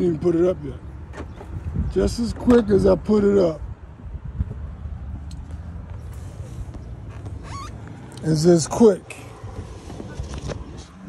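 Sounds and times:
short rising squeak: 7.1s - 7.9s.

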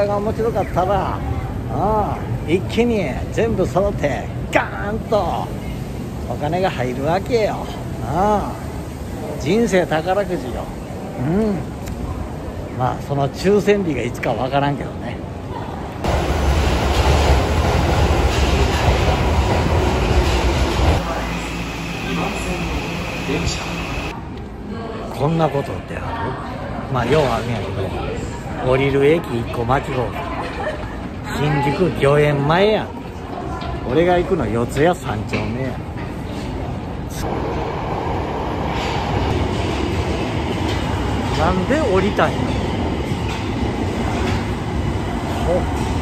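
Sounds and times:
subway train rumbling: 0.0s - 46.0s.

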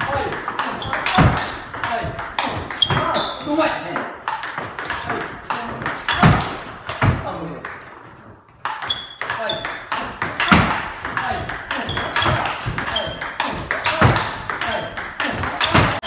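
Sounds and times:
ball bouncing on table: 0.0s - 8.0s, 8.6s - 16.0s
ball clicking off paddles: 0.0s - 8.0s, 8.6s - 16.0s.

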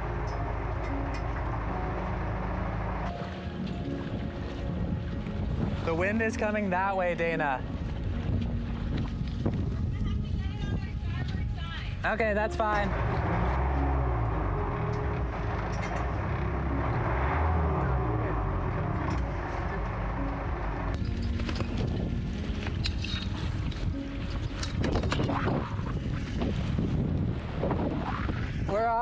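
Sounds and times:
water noise: 0.0s - 29.0s
wind rumbling on microphone: 0.0s - 29.0s
clicks and knocks of boat pole: 20.9s - 25.7s.

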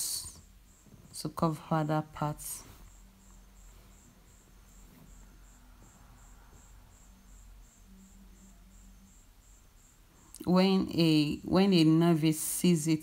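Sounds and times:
insect chirping: 0.0s - 13.0s
low room hum: 0.0s - 13.0s.

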